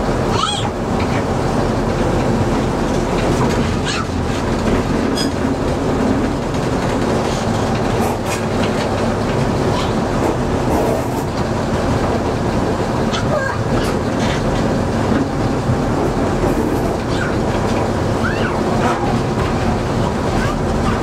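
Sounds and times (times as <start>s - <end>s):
diesel locomotive engine drone: 0.0s - 21.0s
wheels clicking over rail joints: 0.1s - 21.0s.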